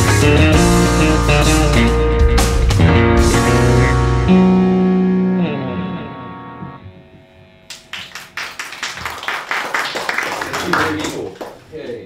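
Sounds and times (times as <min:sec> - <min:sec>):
electric bass chord ringing: 0:00.0 - 0:08.0.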